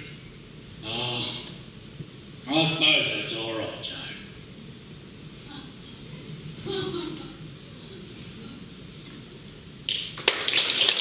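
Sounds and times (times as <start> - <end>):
audience applause: 9.9 - 11.0.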